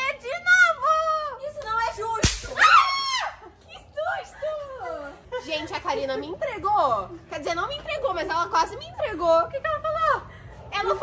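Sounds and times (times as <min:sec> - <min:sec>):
sharp smack: 0:02.2 - 0:02.7.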